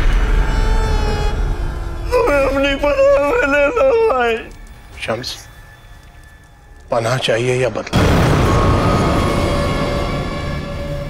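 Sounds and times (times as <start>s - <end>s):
person wailing: 2.0s - 4.6s.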